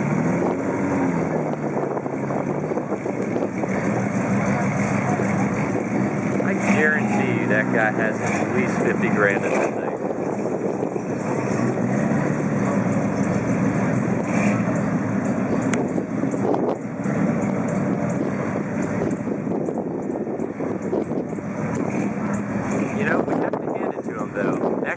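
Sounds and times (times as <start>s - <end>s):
car engine running at low speed: 0.0s - 24.9s.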